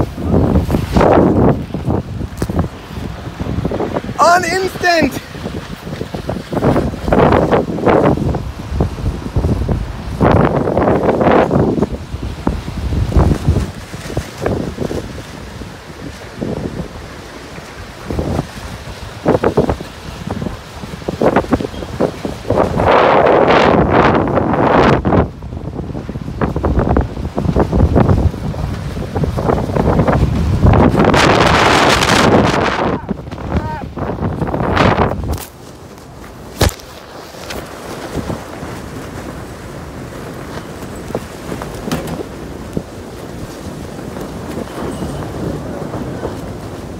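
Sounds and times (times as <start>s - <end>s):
wind gusting on microphone: 0.0s - 46.9s.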